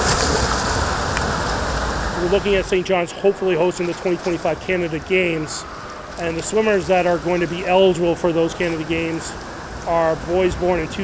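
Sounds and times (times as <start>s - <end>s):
swimmer splashing in pool water: 0.0s - 11.0s.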